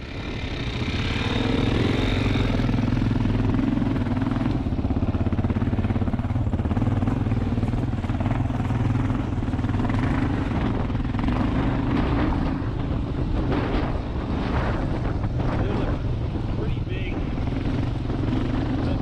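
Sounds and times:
motorcycle engine under load: 0.0s - 19.0s.

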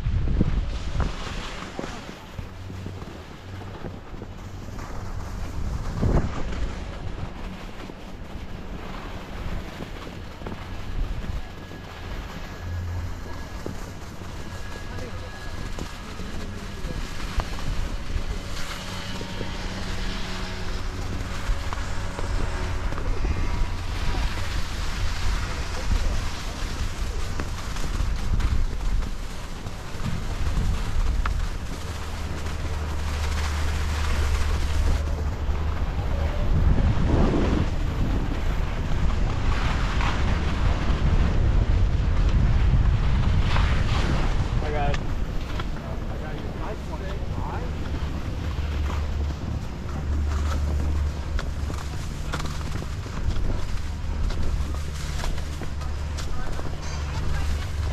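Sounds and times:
wind rushing over microphone: 0.0s - 57.9s
skis scraping over packed snow: 0.1s - 57.9s.

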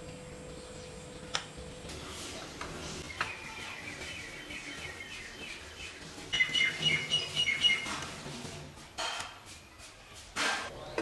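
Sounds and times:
small birds chirping: 0.3s - 8.3s.

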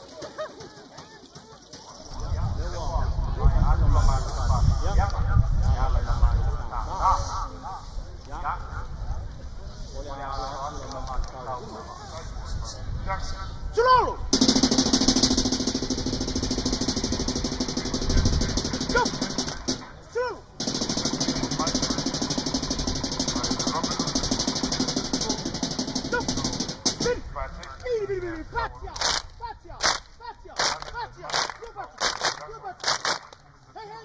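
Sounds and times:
fast continuous clapping: 14.4s - 19.8s, 20.6s - 27.1s, 29.0s - 33.4s
sharp separate claps: 29.0s - 33.4s.

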